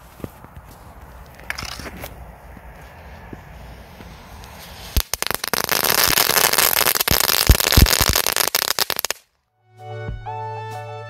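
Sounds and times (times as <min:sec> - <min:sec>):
firecracker crackling and bangs: 0:04.7 - 0:09.3
music: 0:09.5 - 0:11.0.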